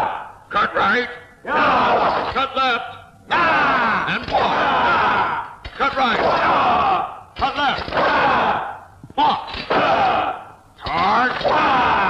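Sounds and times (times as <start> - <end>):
men shouting together: 1.4 - 2.4, 3.2 - 12.0.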